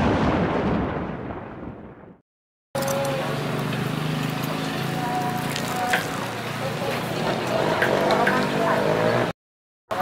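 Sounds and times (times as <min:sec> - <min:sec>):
explosion boom sound effect: 0:00.0 - 0:02.2.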